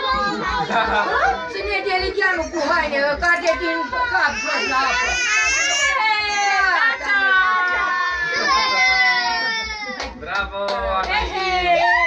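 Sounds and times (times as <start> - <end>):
baby crying: 3.6 - 10.2.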